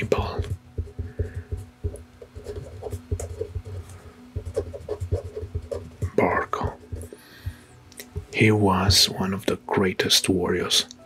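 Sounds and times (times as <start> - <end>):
marker pen writing on paper: 0.0 - 9.0.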